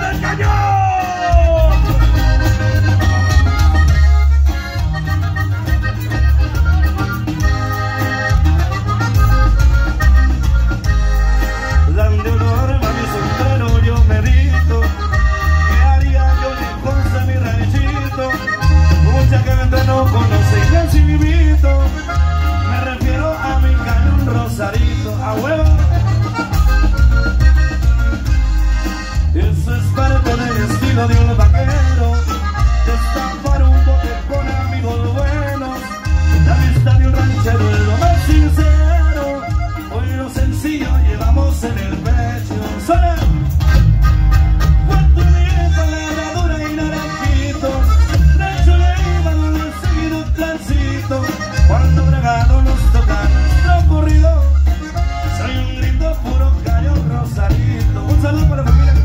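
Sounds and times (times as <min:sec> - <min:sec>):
accordion melody: 0:00.0 - 0:59.0
heavy pulsing bass line: 0:00.0 - 0:59.0
live band playing: 0:00.0 - 0:59.0.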